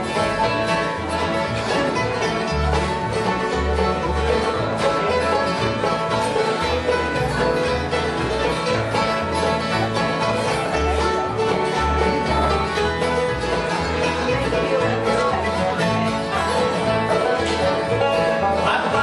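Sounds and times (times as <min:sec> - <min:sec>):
banjo: 0:00.0 - 0:19.0
plucked upright bass: 0:00.0 - 0:19.0
strummed acoustic guitars: 0:00.0 - 0:19.0.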